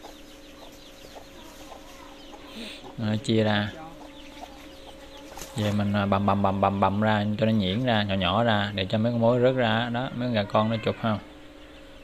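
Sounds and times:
chicks peeping: 0:00.0 - 0:12.0
hen clucking: 0:00.0 - 0:12.0.

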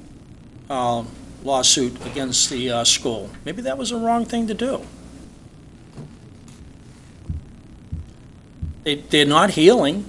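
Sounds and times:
faint room hum: 0:00.0 - 0:10.0
low dull thumps: 0:07.2 - 0:08.9.

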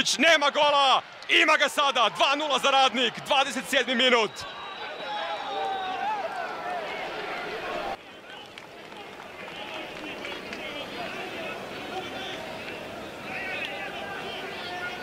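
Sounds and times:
crowd murmur: 0:04.4 - 0:15.0.

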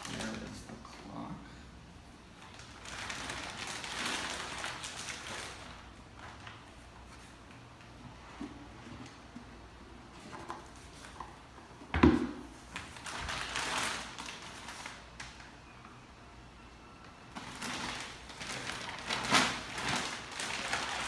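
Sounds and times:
plastic bag rustling and crinkling: 0:00.0 - 0:00.7, 0:02.4 - 0:09.4, 0:12.6 - 0:15.5, 0:17.3 - 0:21.0.

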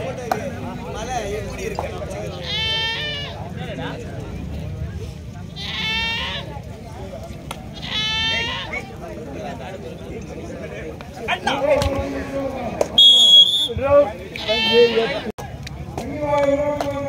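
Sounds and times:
murmur of crowd: 0:00.0 - 0:17.0
goat bleating: 0:02.3 - 0:03.4, 0:05.6 - 0:06.5, 0:07.8 - 0:08.9, 0:14.4 - 0:15.3.

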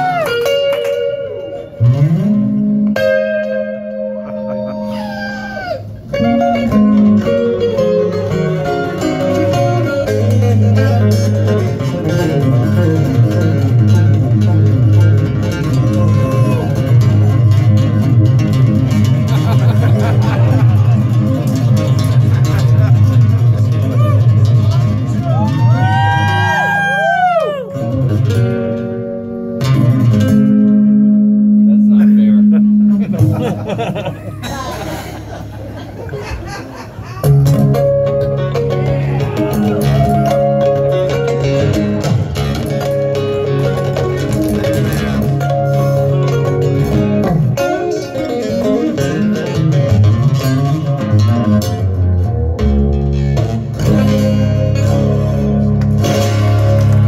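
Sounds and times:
acoustic guitar duet: 0:00.0 - 0:26.8, 0:27.5 - 0:57.0.

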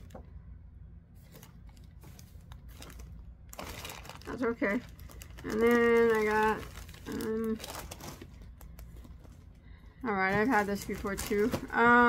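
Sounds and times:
low steady hum: 0:00.0 - 0:12.0
paper and plastic handling: 0:01.2 - 0:12.0
plastic bag rustling: 0:01.2 - 0:12.0.

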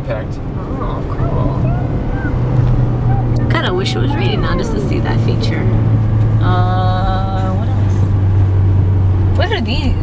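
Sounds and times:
car cabin road drone: 0:00.0 - 0:10.0
woman speaking: 0:03.4 - 0:05.8, 0:06.4 - 0:08.1, 0:09.4 - 0:10.0.

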